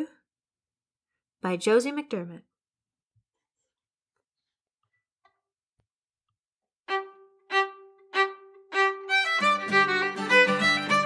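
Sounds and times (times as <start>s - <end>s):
fiddle playing a reel: 6.9s - 11.0s.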